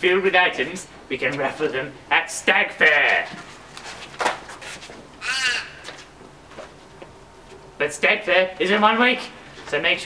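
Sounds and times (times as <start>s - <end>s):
faint outdoor background: 0.0s - 10.0s
crow cawing: 5.2s - 6.0s.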